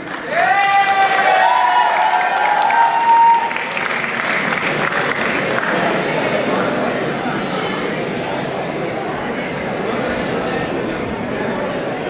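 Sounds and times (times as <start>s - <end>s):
audience applauding: 0.0s - 6.3s
person cheering: 0.3s - 3.5s.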